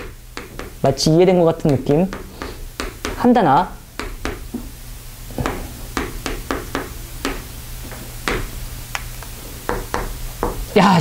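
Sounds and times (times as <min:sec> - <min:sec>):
chalk writing on a chalkboard: 0:01.6 - 0:03.2.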